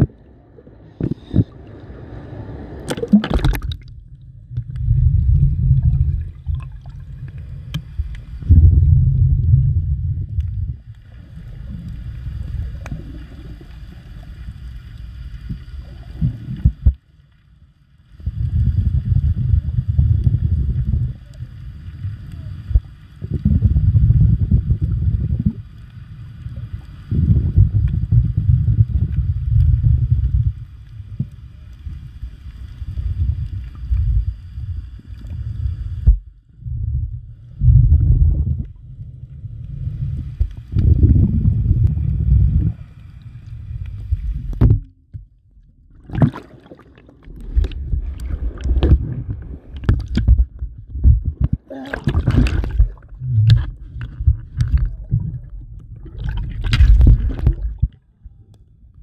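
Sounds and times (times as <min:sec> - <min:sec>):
underwater rushing water: 0:00.0 - 0:58.6.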